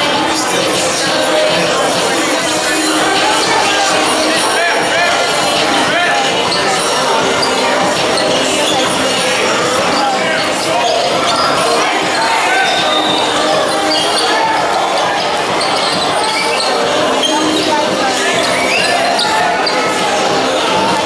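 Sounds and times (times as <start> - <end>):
voices of players and spectators: 0.0 - 21.0.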